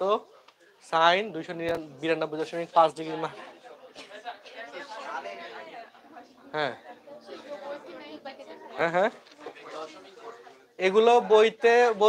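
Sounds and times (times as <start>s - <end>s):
indistinct voices and chatter: 0.0s - 12.0s.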